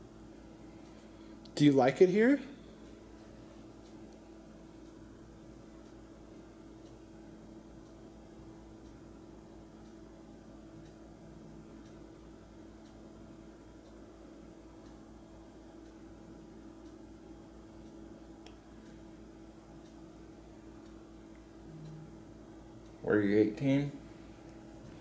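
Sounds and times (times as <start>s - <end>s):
faint electrical hum: 0.0s - 25.0s.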